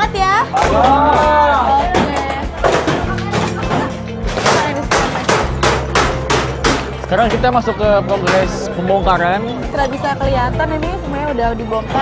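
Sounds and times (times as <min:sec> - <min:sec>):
hand tools striking ceiling: 0:02.0 - 0:07.5.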